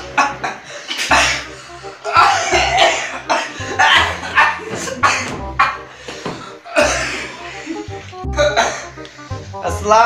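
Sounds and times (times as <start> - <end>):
background music: 0.0 - 10.0
man coughing: 0.2 - 7.4, 8.4 - 9.0.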